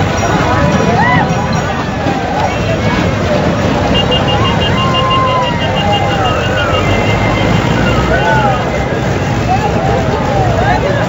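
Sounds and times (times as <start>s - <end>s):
rapid pulsing high tone: 0.0s - 10.8s
tractor engine running: 0.0s - 11.0s
men shouting and cheering: 0.6s - 10.9s.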